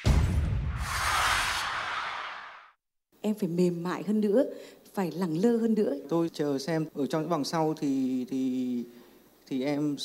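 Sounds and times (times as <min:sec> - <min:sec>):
low rumble: 0:00.0 - 0:02.7
noisy whoosh: 0:00.0 - 0:02.8.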